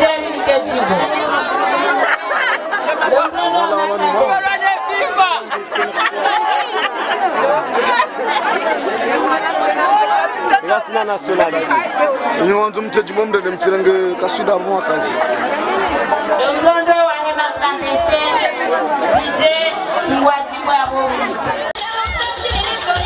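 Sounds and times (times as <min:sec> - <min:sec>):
voices chattering: 0:00.0 - 0:23.0.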